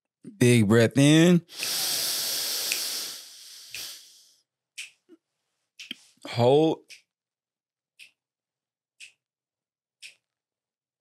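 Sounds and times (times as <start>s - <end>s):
deep breath through the nose: 1.5s - 4.4s.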